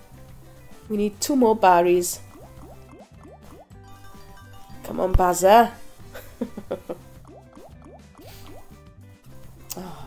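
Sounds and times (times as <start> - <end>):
game background music: 0.0 - 10.0
bubbly rising bloops: 2.2 - 3.7, 7.2 - 8.7.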